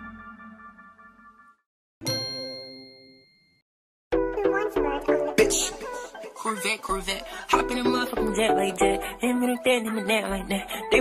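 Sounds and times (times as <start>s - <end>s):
bell-like ding: 2.0s - 3.6s.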